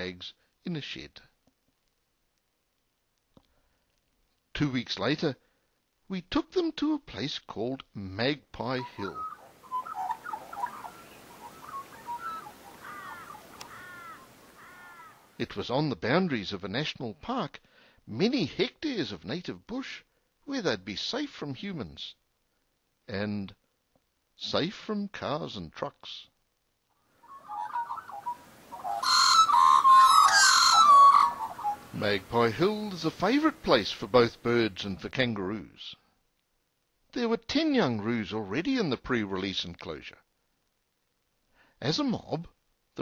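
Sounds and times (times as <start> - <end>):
magpie calling: 8.8 - 15.4, 27.1 - 33.0.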